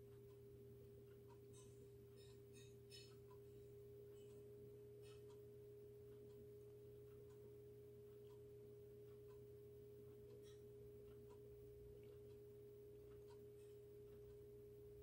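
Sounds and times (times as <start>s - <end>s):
faint steady hum: 0.0s - 15.0s
faint ticks: 4.1s - 15.0s.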